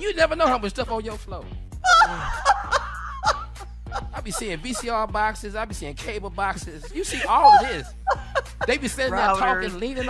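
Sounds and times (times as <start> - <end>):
people laughing: 1.9 - 5.2, 6.5 - 10.0.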